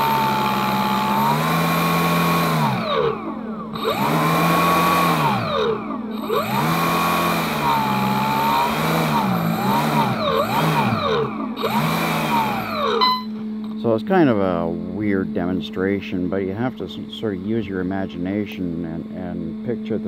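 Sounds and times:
model boat motor and propeller whine: 0:00.0 - 0:17.7.

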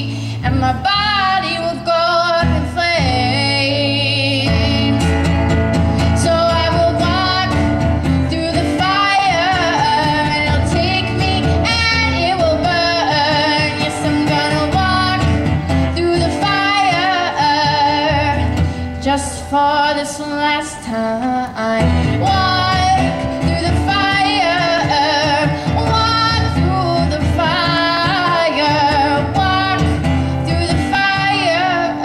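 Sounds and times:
girl singing: 0:00.0 - 0:05.3, 0:06.0 - 0:32.0
guitar chords: 0:00.0 - 0:32.0.

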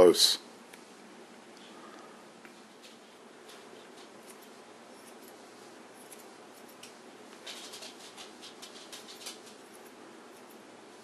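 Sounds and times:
scissors snipping fur: 0:04.0 - 0:07.0, 0:08.5 - 0:10.7.

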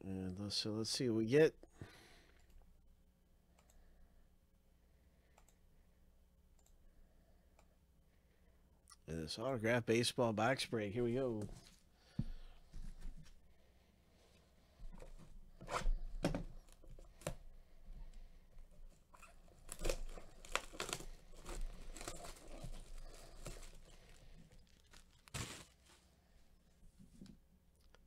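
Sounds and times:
plastic shrink wrap crackling: 0:19.1 - 0:26.0.

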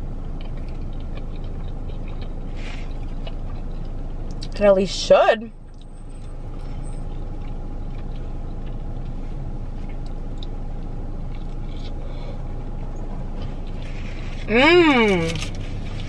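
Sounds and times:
chewing mouth sounds: 0:00.0 - 0:04.6, 0:05.6 - 0:14.5
car engine idling: 0:00.0 - 0:16.0.

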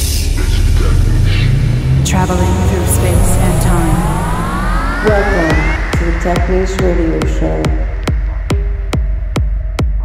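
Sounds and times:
low steady drone: 0:00.0 - 0:09.3
synthesizer riser sweeping upward: 0:00.4 - 0:08.4.

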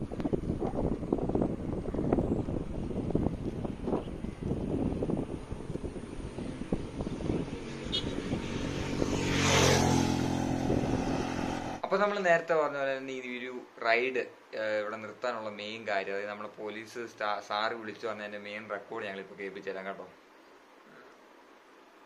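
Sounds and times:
wind buffeting microphone: 0:00.0 - 0:11.8
vehicle engine passing by: 0:06.0 - 0:11.8.

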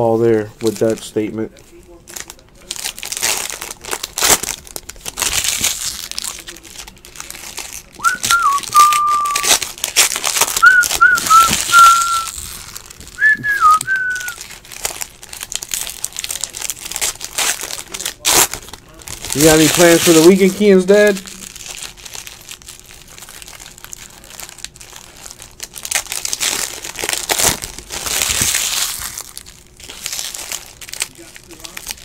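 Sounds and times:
foil wrapper crinkling and tearing: 0:00.0 - 0:32.0
person whistling a tune: 0:08.0 - 0:09.5, 0:10.6 - 0:12.4, 0:13.2 - 0:14.4.

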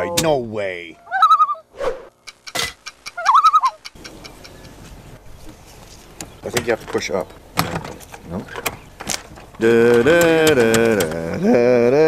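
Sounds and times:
clock ticking: 0:02.2 - 0:04.8.

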